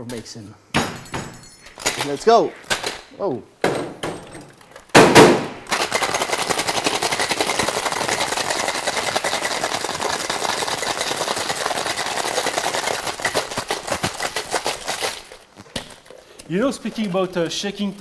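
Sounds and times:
ice rattling in cocktail shaker: 5.7 - 18.0.

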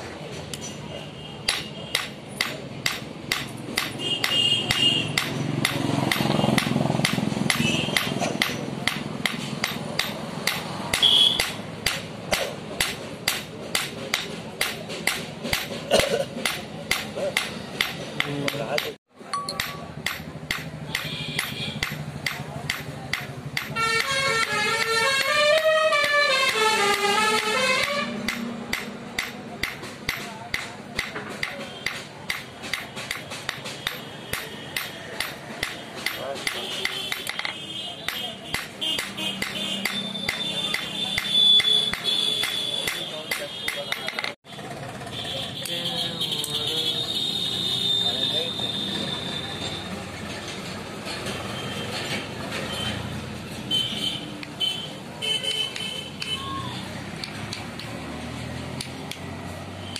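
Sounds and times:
hammer striking hot steel on anvil: 1.4 - 24.2, 26.0 - 44.4.

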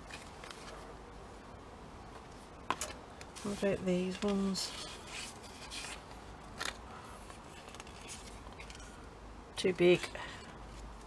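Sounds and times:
paper rustling: 2.7 - 9.0.

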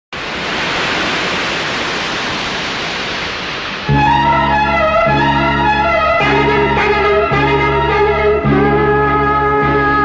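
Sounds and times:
loud rushing hiss: 0.1 - 8.4.

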